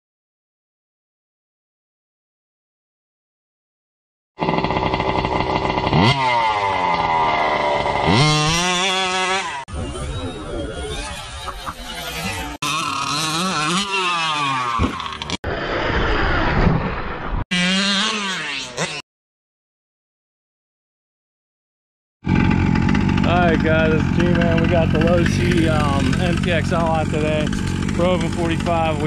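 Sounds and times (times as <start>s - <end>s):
two-stroke engine revving hard: 4.4s - 9.8s, 10.7s - 15.4s, 17.5s - 19.0s, 22.2s - 29.0s.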